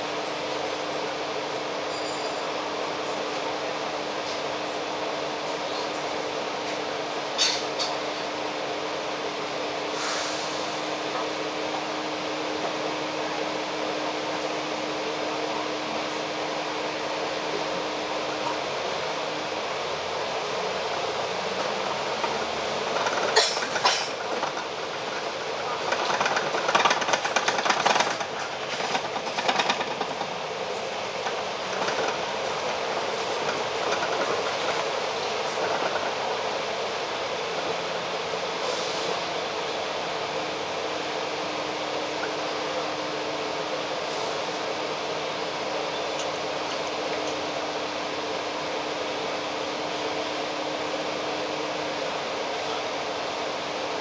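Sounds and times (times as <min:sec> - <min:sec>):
bus engine drone: 0:00.0 - 0:54.0
loud rattling clatter: 0:21.6 - 0:36.3.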